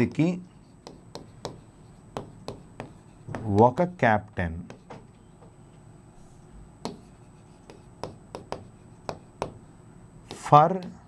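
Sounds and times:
pen writing on board: 0.0s - 3.8s, 4.7s - 5.0s, 6.8s - 9.7s, 10.3s - 10.9s.

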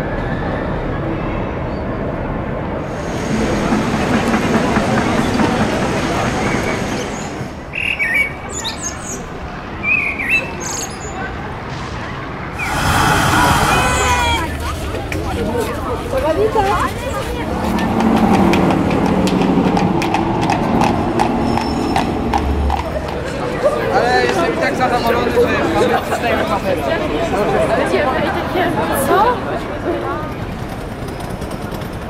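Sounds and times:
murmur of people: 0.0s - 32.0s
street noise: 0.0s - 32.0s
people talking close by: 0.6s - 32.0s.

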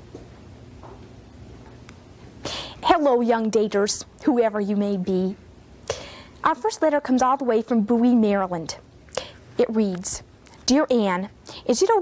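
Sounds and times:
faint room hiss: 0.0s - 12.0s
sharp in-breath: 2.4s - 2.8s, 5.9s - 6.4s
woman speaking: 2.8s - 5.4s, 6.4s - 8.8s, 9.6s - 12.0s.

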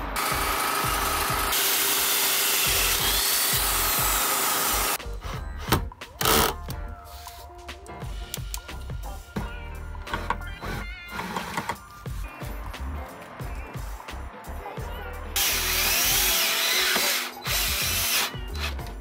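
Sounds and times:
background music: 0.0s - 19.0s
cordless drill driving screws: 0.2s - 5.0s, 15.4s - 18.8s.

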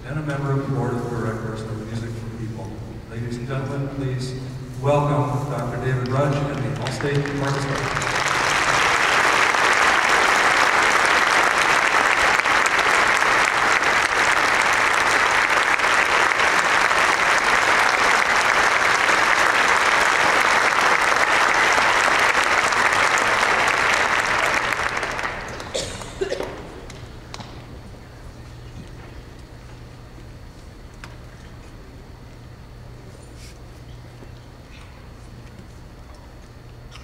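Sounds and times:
audience applauding: 6.3s - 27.0s.

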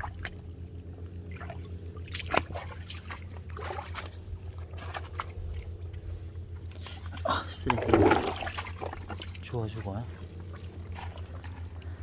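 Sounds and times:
water splashing and running off: 7.1s - 11.9s.

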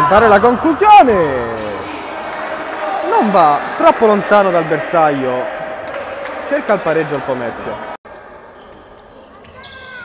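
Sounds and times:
hall reverberant background: 0.0s - 10.0s
shoe squeak: 8.4s - 10.0s.

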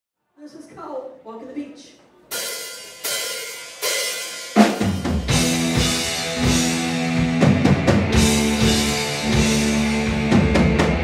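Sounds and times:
rock band playing: 2.3s - 11.0s.

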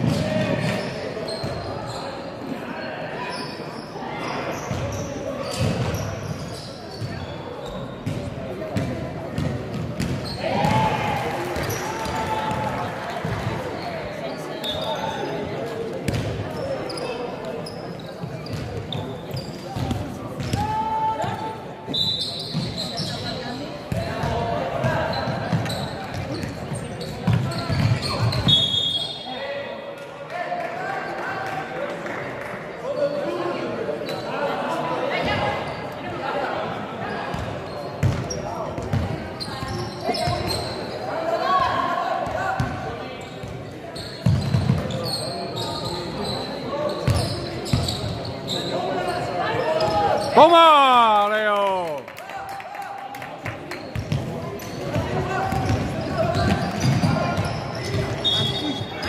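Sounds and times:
shouts and chatter: 10.2s - 15.5s, 20.5s - 21.9s, 48.7s - 53.5s
loud drawn-out shout: 50.3s - 52.0s.

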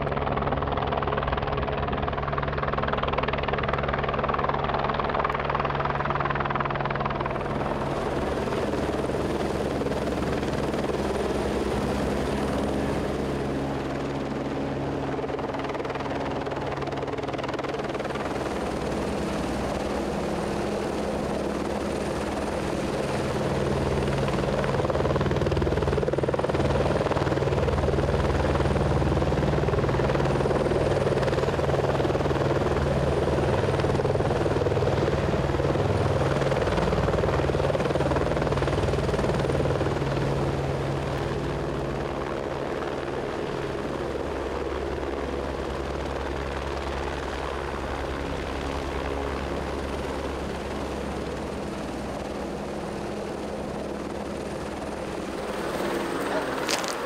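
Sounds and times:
helicopter hovering: 0.0s - 57.0s.

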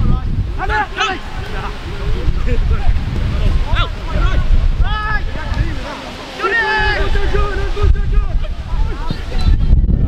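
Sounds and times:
wind buffeting microphone: 0.0s - 10.0s
distant players shouting: 0.5s - 2.2s, 2.8s - 9.6s.

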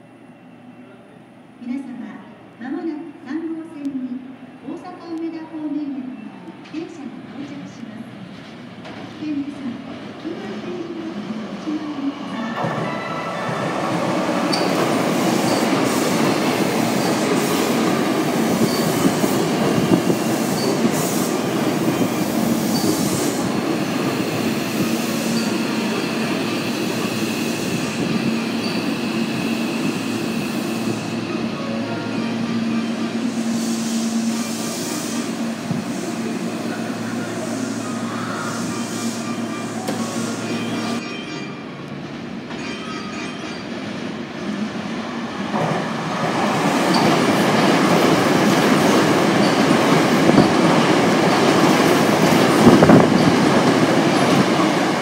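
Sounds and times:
electric train rumbling past: 7.2s - 55.0s.

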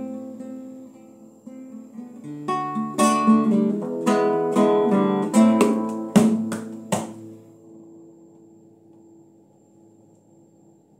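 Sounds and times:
classical guitar strumming: 0.0s - 8.2s.

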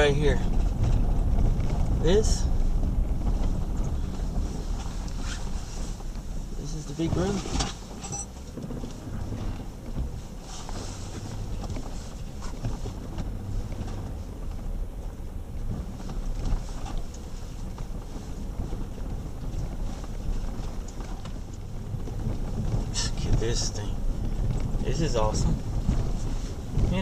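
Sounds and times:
engine and drivetrain rumble: 0.0s - 27.0s
knocks and rattles over bumps: 0.0s - 27.0s.

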